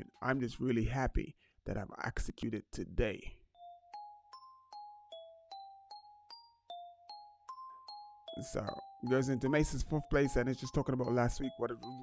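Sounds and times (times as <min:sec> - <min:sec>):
soft bell-like notes: 0:03.5 - 0:12.0.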